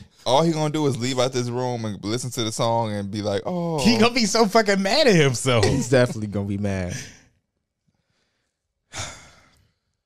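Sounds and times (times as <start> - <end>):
man sighing heavily: 8.9 - 9.5.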